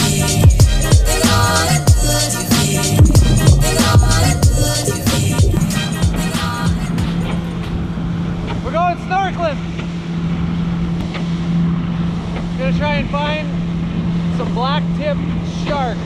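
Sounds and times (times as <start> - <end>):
speedboat motor running: 2.8 - 6.2.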